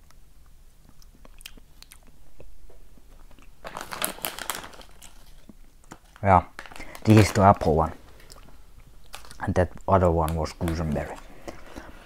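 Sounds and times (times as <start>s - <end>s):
person chewing gummy candy: 0.0s - 7.1s
plastic bag rustling: 3.1s - 12.0s.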